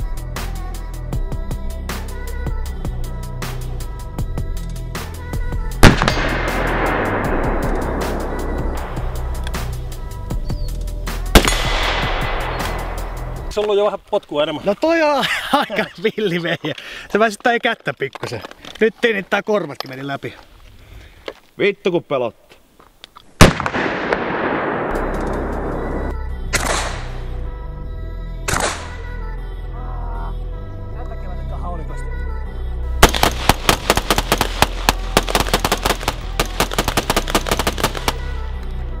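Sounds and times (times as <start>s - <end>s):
background music with steady beat: 0.0s - 13.6s
loud handgun shot: 5.8s - 9.0s, 11.4s - 13.5s, 23.4s - 25.7s, 33.0s - 38.2s
gunshots with long echo: 5.8s - 9.4s, 11.4s - 13.5s, 23.4s - 27.2s, 33.0s - 38.4s.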